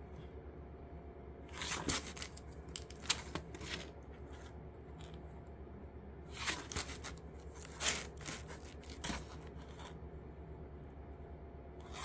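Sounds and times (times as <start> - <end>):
plastic-sleeved comics rustling: 1.5 - 5.2, 6.3 - 10.0.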